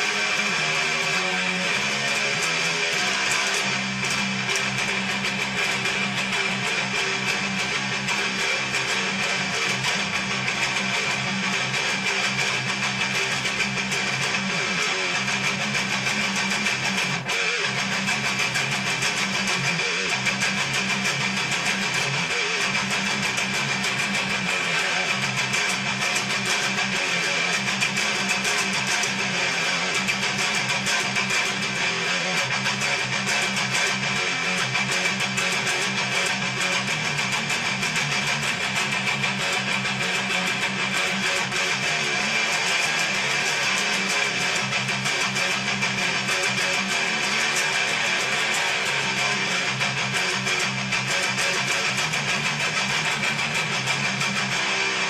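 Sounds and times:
electric guitar fast riffing: 0.0 - 55.0.

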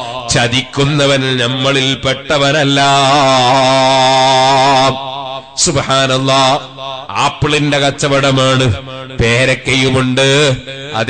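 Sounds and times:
man chanting a held note: 0.0 - 11.0.

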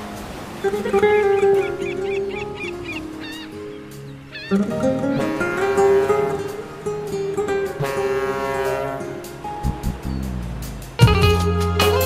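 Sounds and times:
plucked string instrumental music: 0.0 - 12.0.

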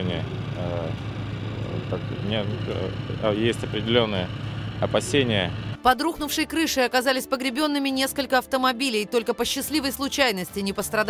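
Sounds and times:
man speaking: 0.0 - 5.6
engine droning: 0.0 - 5.9.

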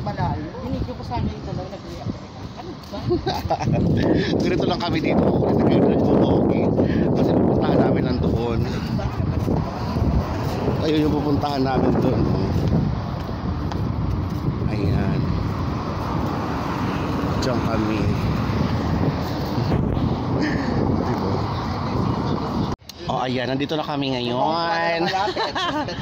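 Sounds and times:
rumble of passing cars: 0.0 - 22.8.

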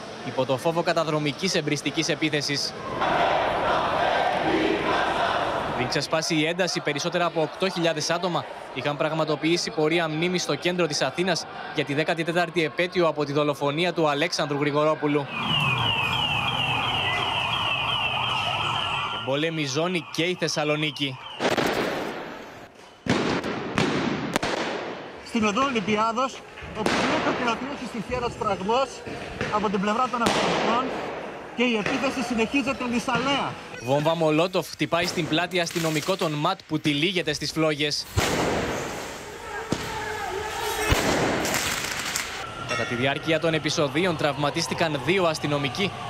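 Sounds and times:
street noise: 0.0 - 46.0
fast electronic siren: 14.9 - 21.5, 42.4 - 46.0
sharp crack: 21.4 - 22.4, 23.0 - 25.1, 26.8 - 27.7, 30.2 - 32.2, 35.0 - 36.4, 38.1 - 42.5
loud explosive bang: 26.8 - 27.6, 30.2 - 32.0, 38.2 - 39.1, 40.9 - 41.8.

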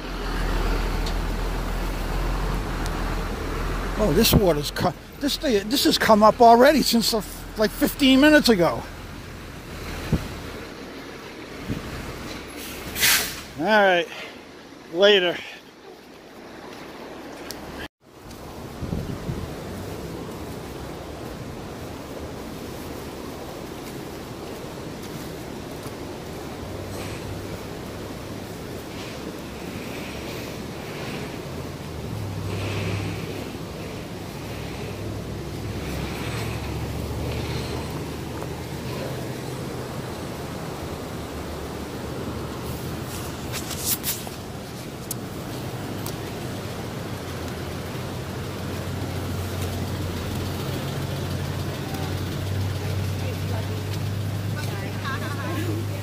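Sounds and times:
river rushing: 0.0 - 56.0
wind on microphone: 9.8 - 10.6, 18.6 - 20.8.

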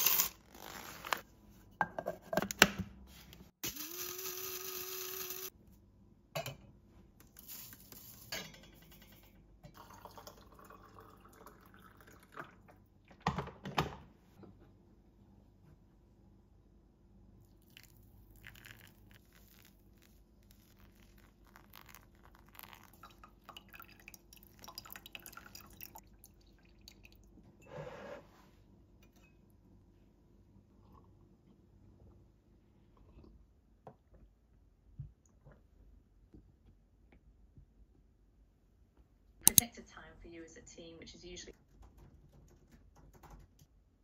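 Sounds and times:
electric coffee grinder grinding beans: 3.6 - 5.5
water trickling onto coffee grounds: 9.7 - 12.6, 17.4 - 27.2
soft drips and splashes: 17.6 - 27.4.

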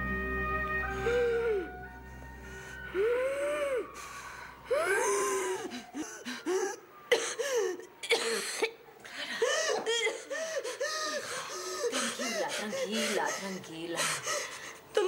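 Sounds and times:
woman whimpering and sobbing: 2.9 - 8.6, 9.2 - 15.0.

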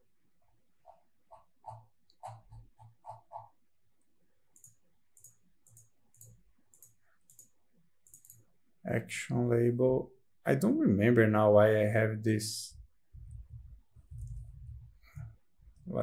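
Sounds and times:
mouse clicks: 4.6 - 8.4.

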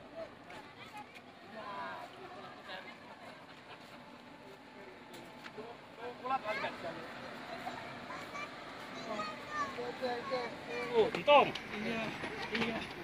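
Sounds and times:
outdoor hum: 0.0 - 13.0.

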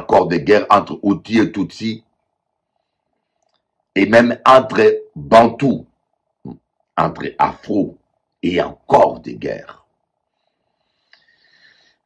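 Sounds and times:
man speaking: 0.0 - 2.0, 4.0 - 5.9, 7.0 - 9.8
faint steady hum: 0.0 - 12.0.

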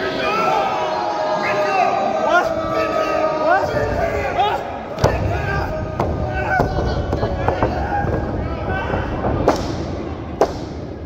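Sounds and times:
crowd shouting: 0.0 - 10.4
slaps and thuds in wrestling ring: 5.0 - 11.0.

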